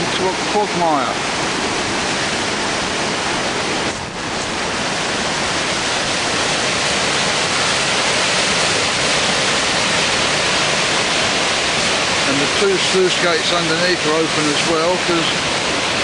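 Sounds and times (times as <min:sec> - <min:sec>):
water rushing over waterfall: 0:00.0 - 0:16.0.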